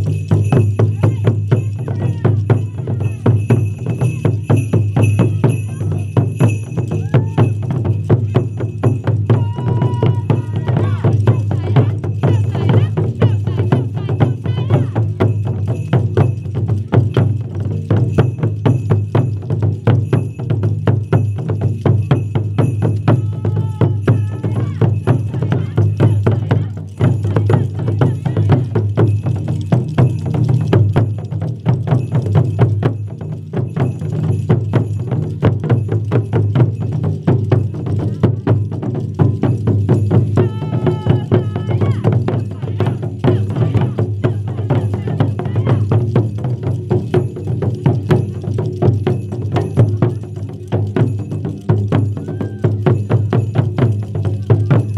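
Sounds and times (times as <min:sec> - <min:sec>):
taiko drums beating: 0:00.0 - 0:54.9.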